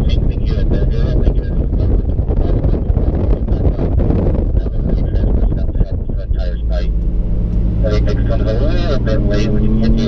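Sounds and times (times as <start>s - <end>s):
car engine drone: 0.0s - 10.0s
wind noise: 0.0s - 10.0s.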